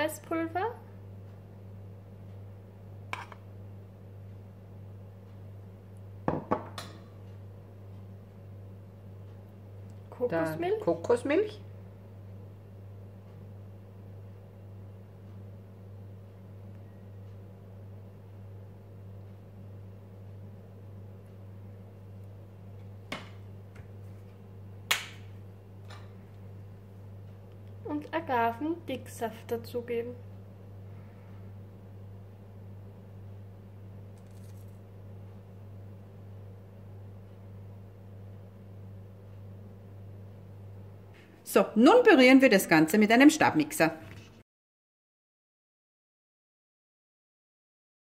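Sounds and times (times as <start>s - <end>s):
sharp plastic snap: 24.9s - 25.3s.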